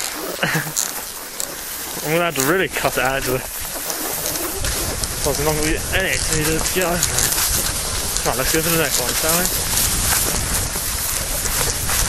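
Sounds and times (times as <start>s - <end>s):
skis sliding over snow: 0.0s - 12.0s
wind on microphone: 0.0s - 12.0s.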